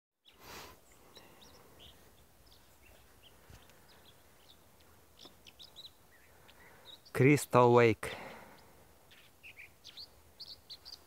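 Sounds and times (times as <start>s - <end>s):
faint bird chirps: 0.2s - 7.4s, 8.2s - 11.0s
quiet outdoor ambience: 0.2s - 11.0s.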